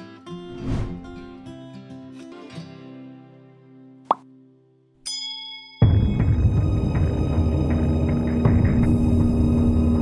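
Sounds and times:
guitar intro music: 0.0 - 4.7.

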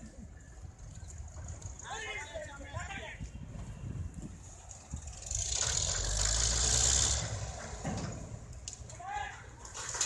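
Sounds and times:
engine running: 4.4 - 8.9.

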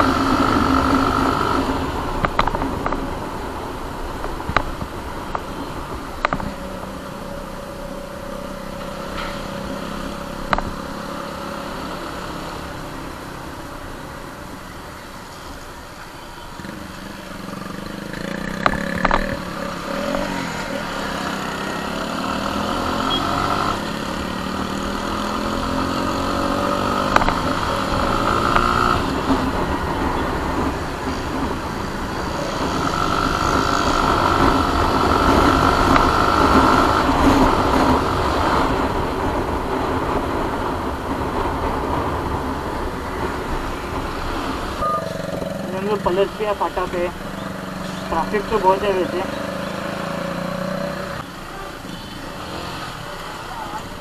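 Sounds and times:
motorcycle engine accelerating: 0.0 - 14.0, 16.5 - 54.0
wind and road noise: 0.0 - 54.0.

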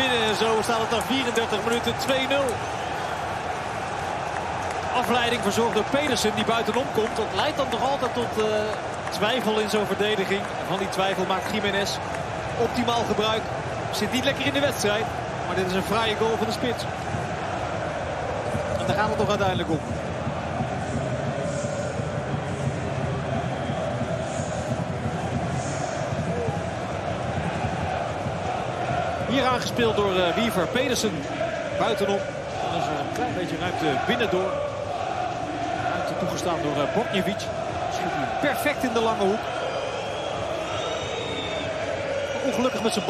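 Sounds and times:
stadium crowd din: 0.0 - 43.0.

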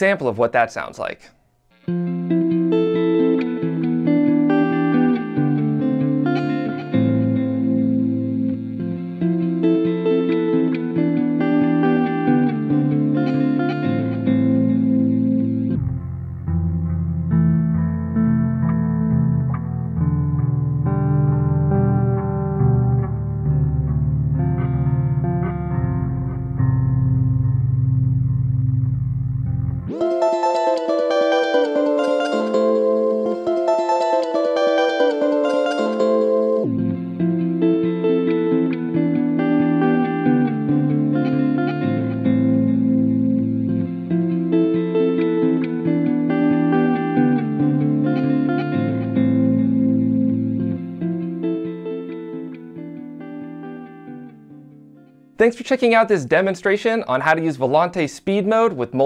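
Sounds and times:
guitar loop changing speed: 1.7 - 56.6.

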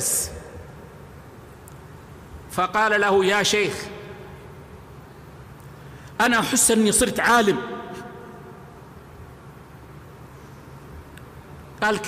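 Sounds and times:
low hum with hiss: 0.0 - 12.0.

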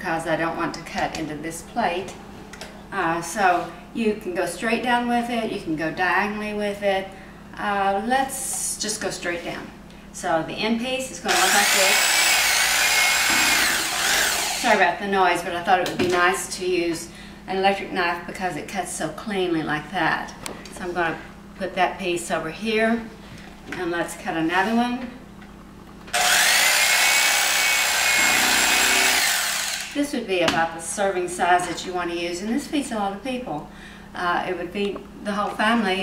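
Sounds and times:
electric carving knife whining: 11.3 - 14.8, 26.2 - 30.0.

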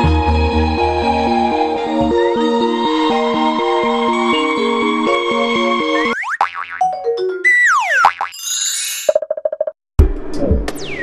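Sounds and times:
cartoon boings: 6.0 - 9.7
cartoon swooping pitch glides: 7.4 - 9.2.

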